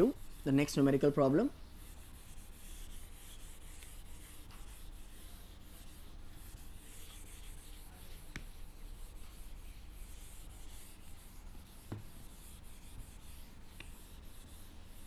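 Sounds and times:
eraser rubbing on whiteboard: 0.0 - 15.0.

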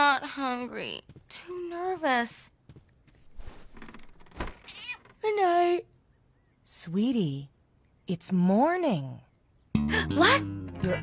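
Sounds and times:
bedclothes rustling: 3.2 - 4.7
cat meowing: 4.7 - 5.0.

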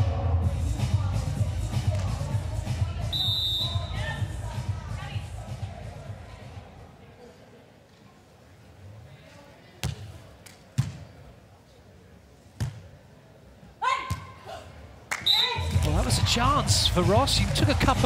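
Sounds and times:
loud arena music: 0.0 - 5.2, 15.6 - 18.0.

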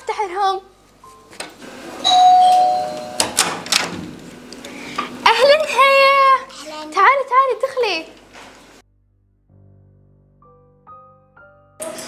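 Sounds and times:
two-note doorbell chime: 2.0 - 3.4
door lock and handle clicks: 2.1 - 4.0.

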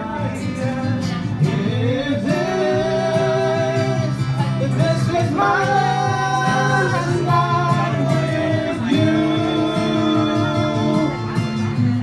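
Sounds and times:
men singing together: 0.0 - 11.3
strummed acoustic guitar: 0.0 - 12.0.

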